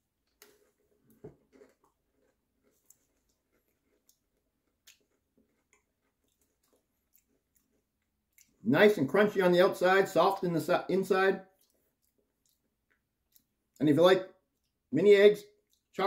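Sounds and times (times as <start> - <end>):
cookie crunching: 0.0 - 8.6.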